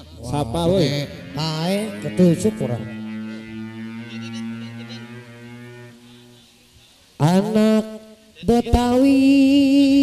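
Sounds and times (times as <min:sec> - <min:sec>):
keyboard low droning note: 0:00.0 - 0:07.0.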